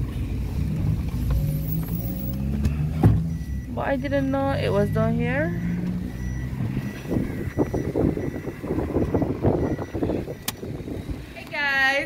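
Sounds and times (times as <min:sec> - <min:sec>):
engine hum: 0:00.0 - 0:12.0
high-pitched steady tone: 0:03.3 - 0:11.4.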